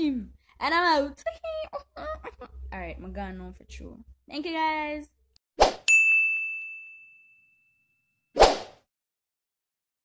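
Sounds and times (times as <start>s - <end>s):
high-pitched ding: 5.9s - 8.2s.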